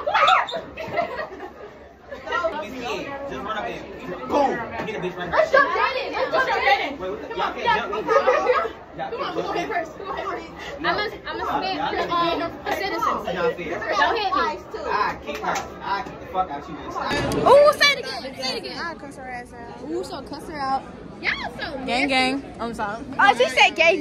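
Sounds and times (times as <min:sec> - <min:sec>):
teenagers chattering: 0:00.0 - 0:24.0.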